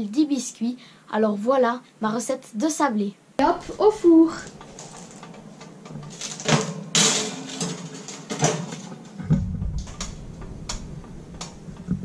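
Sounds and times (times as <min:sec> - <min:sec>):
metal tray sliding into oven: 0:06.0 - 0:09.3.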